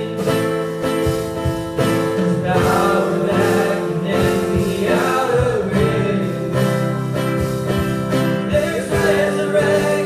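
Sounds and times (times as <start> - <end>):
instrumental accompaniment: 0.0 - 10.0
group singing worship song: 1.5 - 10.0.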